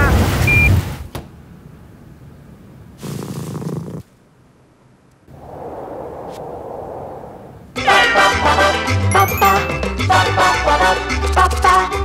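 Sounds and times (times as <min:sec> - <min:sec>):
cat purring: 0:03.0 - 0:04.1.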